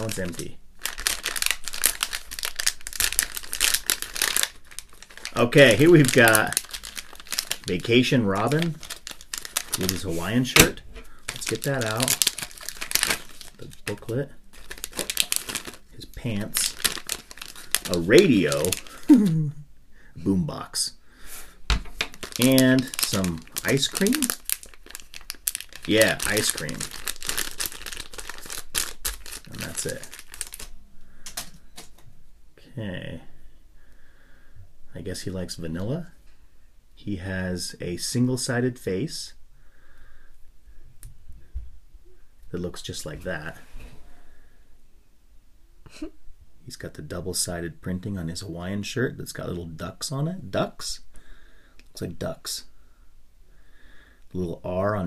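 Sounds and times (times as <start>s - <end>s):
plastic foil bag crinkling: 0.0s - 19.5s, 22.0s - 32.0s.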